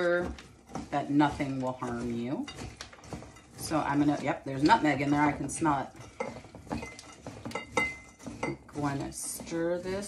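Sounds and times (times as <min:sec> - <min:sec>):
utensil knocking and scraping bowl: 0:00.0 - 0:10.0.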